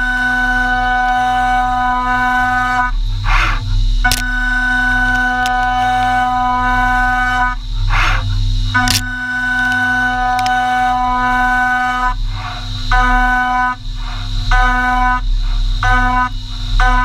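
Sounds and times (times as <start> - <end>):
high-pitched milling whine: 0.0 - 17.0.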